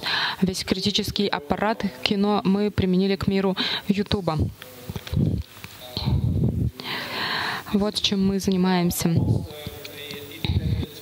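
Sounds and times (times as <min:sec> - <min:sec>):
man speaking into a microphone: 0:09.0 - 0:11.0.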